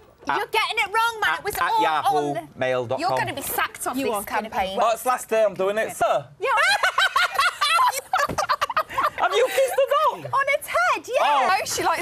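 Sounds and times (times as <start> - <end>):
women laughing hard: 6.6 - 10.1.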